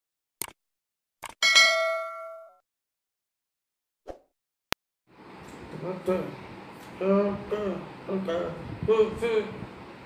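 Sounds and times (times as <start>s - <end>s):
bright bell ding: 1.4s - 2.6s.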